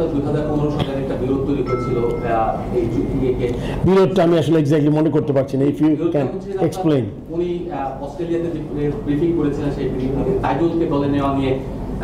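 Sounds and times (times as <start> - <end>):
man talking into microphones: 0.0 - 11.6.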